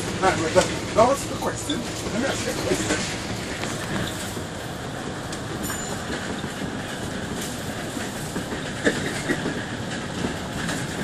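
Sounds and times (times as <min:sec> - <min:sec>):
bus engine and tyres on wet road: 0:00.0 - 0:11.0.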